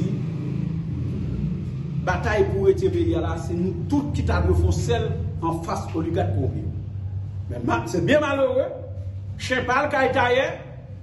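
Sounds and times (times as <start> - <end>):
steady low rumble: 0.8 - 11.0.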